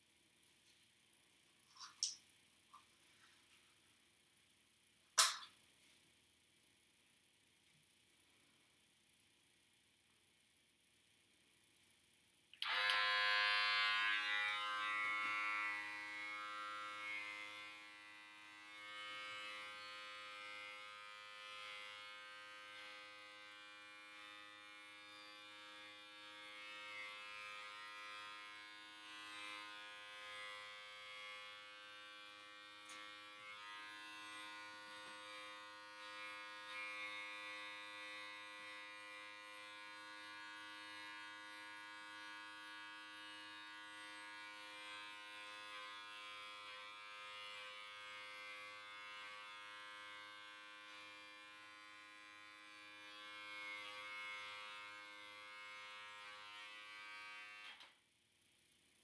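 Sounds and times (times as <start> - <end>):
electric hair clippers buzzing: 4.8 - 5.7, 12.5 - 58.0.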